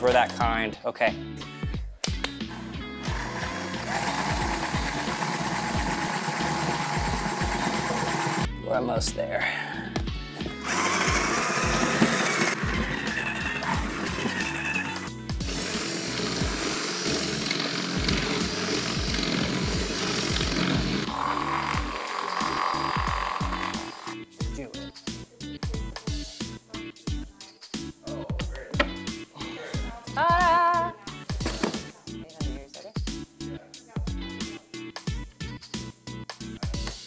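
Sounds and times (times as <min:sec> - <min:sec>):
background music with steady beat: 0:00.0 - 0:37.0
cordless drill boring into plastic: 0:03.0 - 0:08.5, 0:10.6 - 0:24.2.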